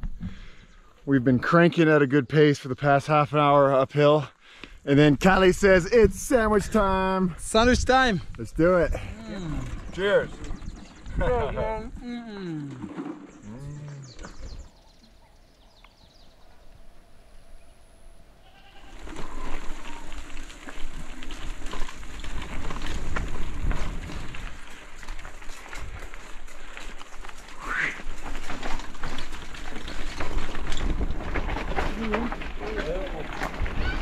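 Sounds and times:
wind rumbling on microphone: 5.2s - 12.2s, 13.4s - 34.0s
bicycle rattling over bumps: 8.9s - 11.5s, 18.8s - 34.0s.

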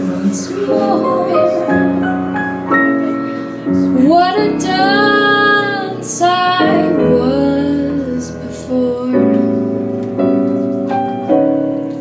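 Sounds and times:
woman singing: 0.0s - 2.2s, 3.8s - 9.8s
soft piano accompaniment: 0.0s - 12.0s.

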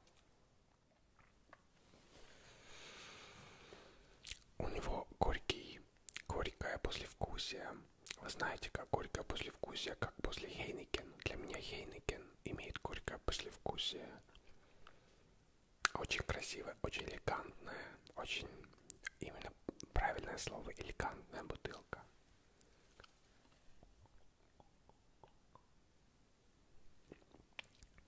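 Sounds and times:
wet mouth clicks and lip smacks: 4.2s - 4.5s, 6.1s - 6.4s, 8.0s - 8.2s, 15.8s - 16.1s, 18.6s - 19.9s, 22.9s - 23.2s, 23.8s - 25.8s, 27.0s - 28.0s
person whispering: 4.3s - 14.3s, 15.8s - 22.2s.

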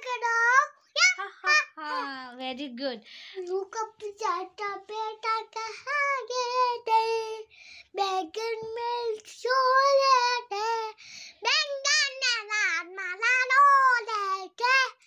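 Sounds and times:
boy singing: 0.0s - 2.2s, 3.4s - 15.0s.

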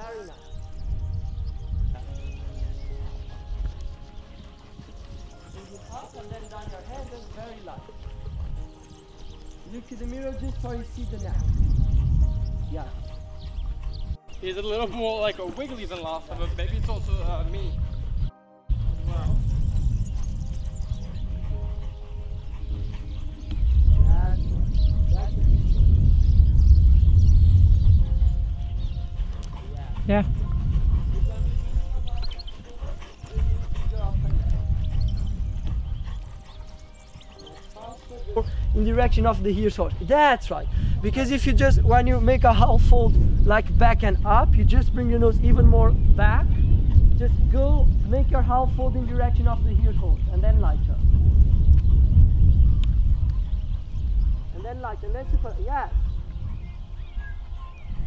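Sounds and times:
horse trotting on sand: 0.0s - 58.0s
heavy low rumble: 16.2s - 56.7s.

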